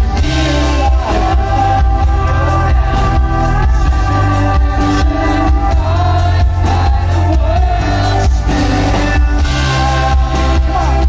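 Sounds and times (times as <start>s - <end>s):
live rock band playing: 0.0s - 11.0s
person singing: 0.0s - 11.0s.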